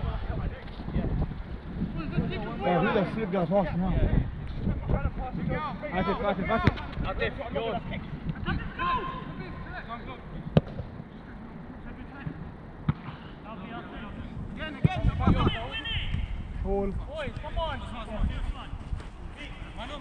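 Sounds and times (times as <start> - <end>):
football being kicked: 6.6 - 7.1, 10.5 - 11.0.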